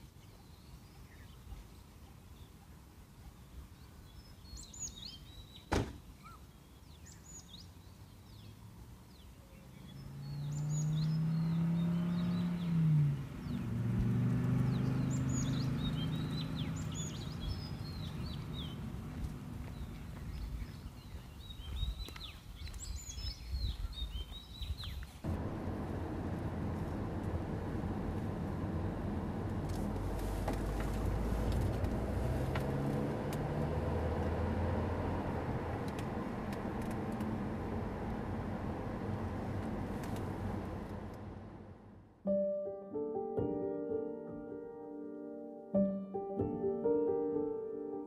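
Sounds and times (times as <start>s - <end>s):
small birds chirping: 0.0s - 25.3s
low hum: 25.3s - 42.2s.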